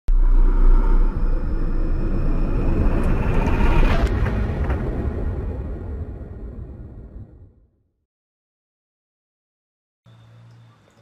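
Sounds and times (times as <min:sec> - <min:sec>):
whooshing riser: 0:00.1 - 0:07.6
deep rumble: 0:00.1 - 0:08.0.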